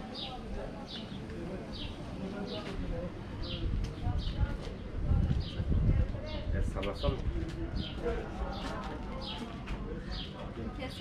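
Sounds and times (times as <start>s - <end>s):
people's voices in street: 0.0s - 11.0s.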